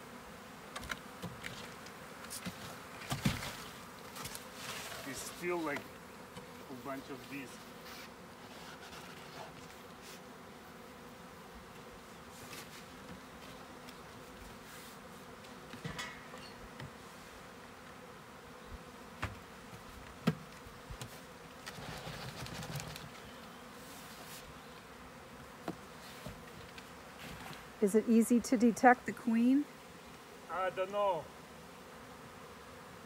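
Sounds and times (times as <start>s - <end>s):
bees buzzing: 0.0s - 33.0s.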